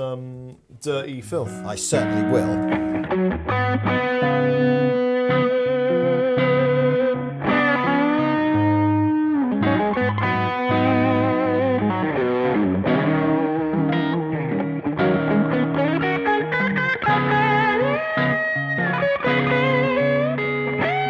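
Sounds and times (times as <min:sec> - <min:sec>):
distorted electric guitars playing blues: 0:00.0 - 0:21.0.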